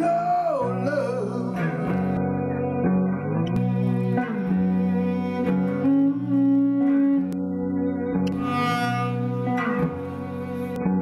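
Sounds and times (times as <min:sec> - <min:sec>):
bass line: 0:00.0 - 0:11.0
electric guitar: 0:00.0 - 0:11.0
lead melody with sliding note: 0:00.8 - 0:11.0.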